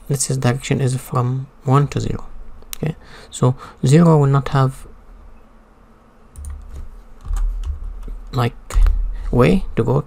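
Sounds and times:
computer keyboard typing: 0:06.4 - 0:09.0.

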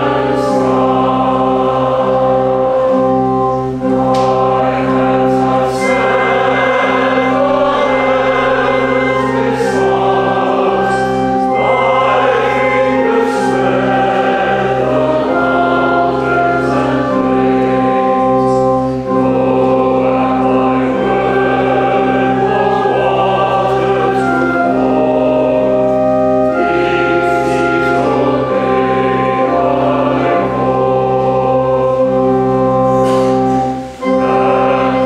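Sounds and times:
choir singing: 0:00.0 - 0:35.0
sustained low notes: 0:00.0 - 0:35.0.

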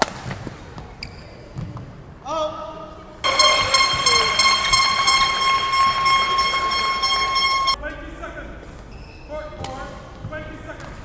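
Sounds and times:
high-pitched horn-like tone: 0:03.2 - 0:07.8
sharp knock in a large hall: 0:03.2 - 0:07.8.

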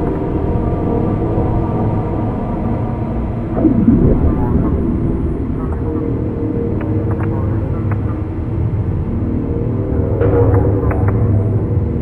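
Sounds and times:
dark ambient drone music: 0:00.0 - 0:12.0.

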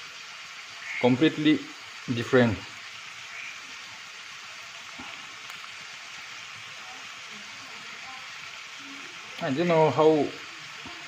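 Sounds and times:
meat and onions sizzling in a pan: 0:00.0 - 0:11.0.

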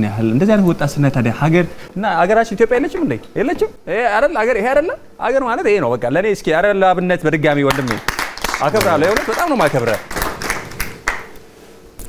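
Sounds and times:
audience clapping: 0:07.6 - 0:11.4.

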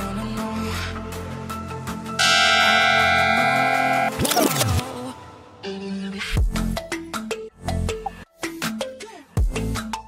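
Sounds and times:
background music: 0:00.0 - 0:10.0
steady bell-like tone: 0:02.2 - 0:04.1.

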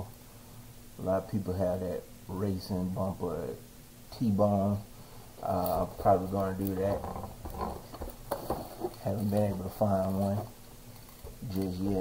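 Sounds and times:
plastic wrap rustling: 0:05.4 - 0:12.0.

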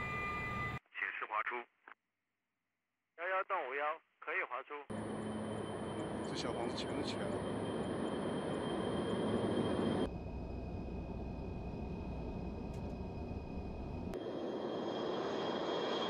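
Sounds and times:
low engine rumble in cockpit: 0:04.9 - 0:14.2
jet engine noise: 0:04.9 - 0:16.0
turbofan high whine: 0:04.9 - 0:16.0.

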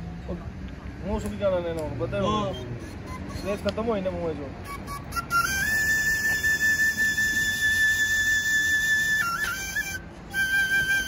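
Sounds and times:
end-blown flute playing: 0:02.4 - 0:03.7, 0:04.6 - 0:11.0.

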